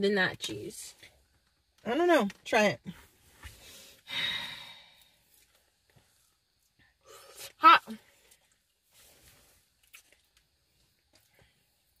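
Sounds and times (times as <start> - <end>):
person exhaling: 3.6 - 5.2.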